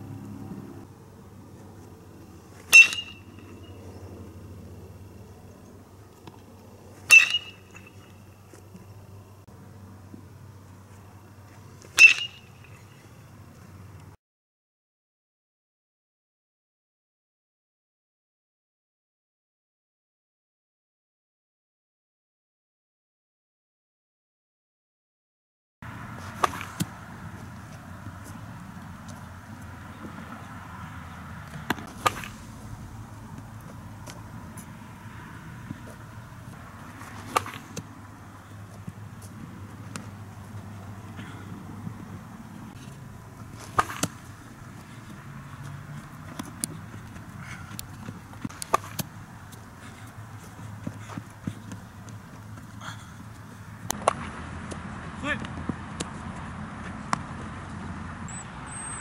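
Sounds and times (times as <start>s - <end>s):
steady low hum: 0.0s - 14.2s, 25.8s - 56.3s
baseball bat cracking ball: 2.6s - 3.6s, 7.0s - 8.6s, 11.8s - 12.8s, 26.1s - 30.3s, 31.4s - 34.8s, 35.5s - 38.0s, 42.7s - 49.7s, 53.8s - 54.8s.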